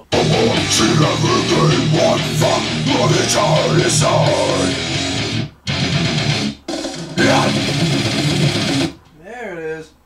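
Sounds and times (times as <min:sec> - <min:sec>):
distorted death metal guitar: 0:00.0 - 0:09.0.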